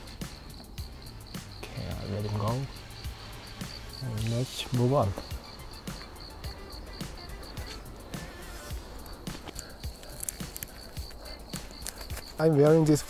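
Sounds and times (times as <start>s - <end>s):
cricket chirping: 0.0s - 13.0s
footsteps on forest floor: 7.4s - 12.4s.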